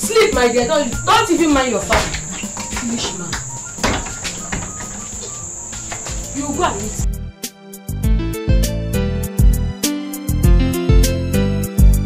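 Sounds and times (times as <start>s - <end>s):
crickets chirping: 0.0s - 7.1s
light knocks: 1.8s - 7.0s.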